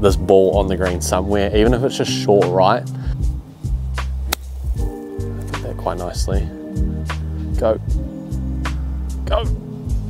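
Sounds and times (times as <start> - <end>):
background music: 0.0 - 10.0
golf club striking ball: 4.2 - 5.6.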